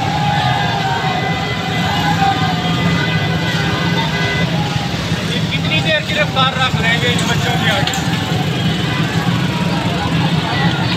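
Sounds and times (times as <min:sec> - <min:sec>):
crowd voices: 0:00.0 - 0:10.9
motorcycle rickshaw engine running: 0:00.0 - 0:10.9
street traffic: 0:00.0 - 0:10.9.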